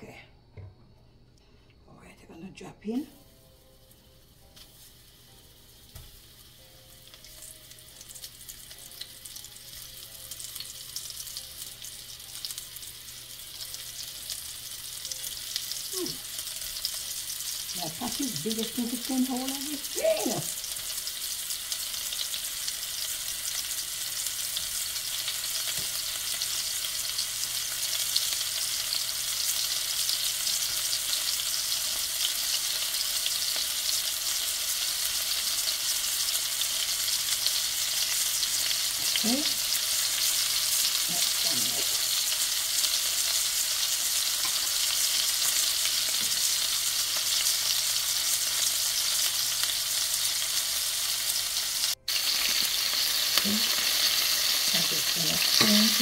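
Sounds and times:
meatballs sizzling in oil: 0:03.1 - 0:56.0.

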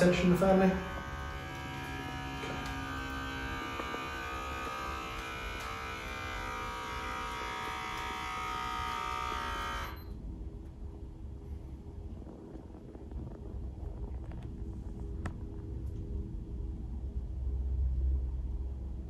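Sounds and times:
blood pressure monitor pump: 0:00.0 - 0:10.2.

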